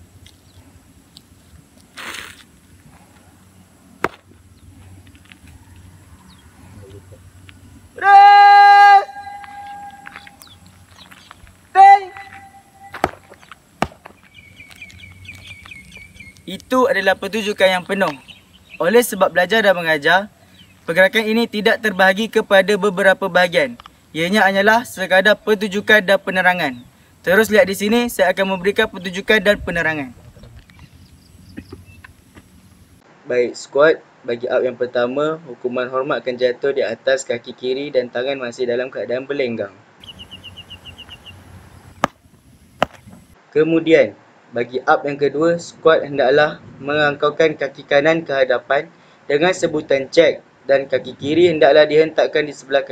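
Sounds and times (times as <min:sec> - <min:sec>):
bird chirping: 0:05.4 - 0:08.0, 0:09.0 - 0:33.0, 0:40.0 - 0:43.4
bird chirping short high notes: 0:09.0 - 0:10.6, 0:12.0 - 0:13.1.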